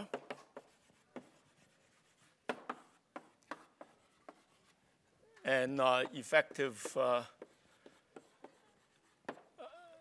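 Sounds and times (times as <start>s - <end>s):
chalk writing on blackboard: 0.0s - 5.0s, 5.7s - 9.6s.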